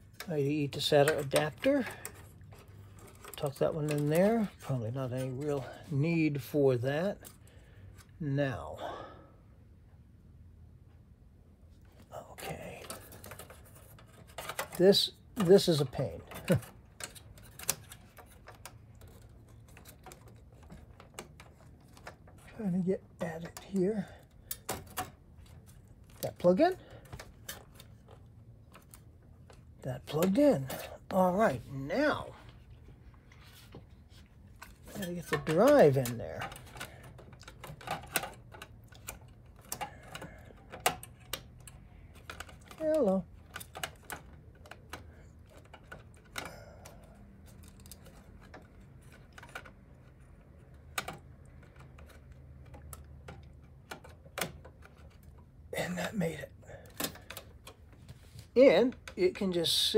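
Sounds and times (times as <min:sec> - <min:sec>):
small clicks and knocks on metal: 0:00.0 - 0:05.8, 0:11.9 - 0:31.0, 0:33.7 - 0:55.7, 0:56.8 - 0:59.2
low steady hum: 0:00.0 - 0:59.9.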